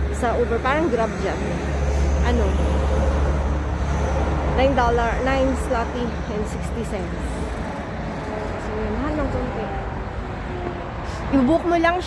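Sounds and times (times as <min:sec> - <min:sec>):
woman speaking: 0:00.0 - 0:02.8, 0:04.6 - 0:07.2, 0:11.3 - 0:12.0
street traffic rumble: 0:00.0 - 0:12.0.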